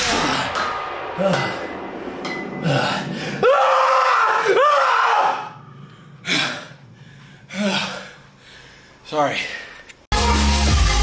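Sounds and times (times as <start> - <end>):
man groaning and gasping: 7.4 - 8.3.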